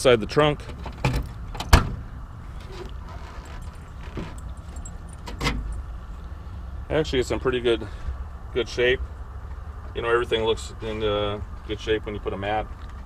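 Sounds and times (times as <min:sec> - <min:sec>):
trunk lock click: 0:00.8 - 0:02.1, 0:02.8 - 0:05.8
car keys jangling: 0:03.1 - 0:05.9.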